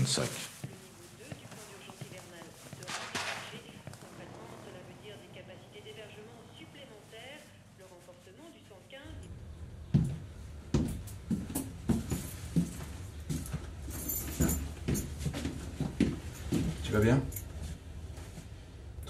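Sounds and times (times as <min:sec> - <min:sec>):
steady low hum: 0:00.5 - 0:19.0.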